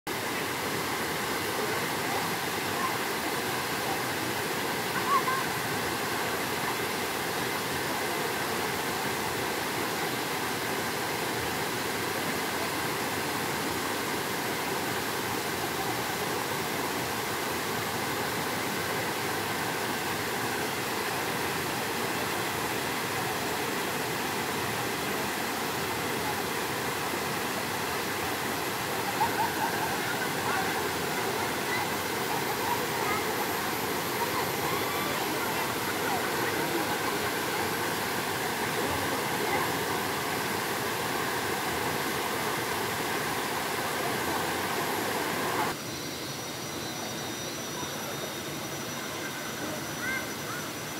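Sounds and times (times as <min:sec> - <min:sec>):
waterfall rushing into pool: 0:00.1 - 0:46.3, 0:47.0 - 0:50.9.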